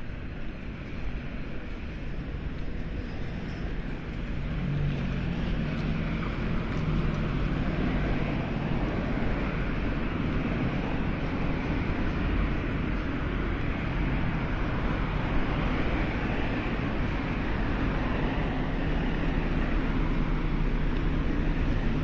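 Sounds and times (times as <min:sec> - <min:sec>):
street traffic noise: 0:00.0 - 0:22.0
car engine humming: 0:01.8 - 0:22.0.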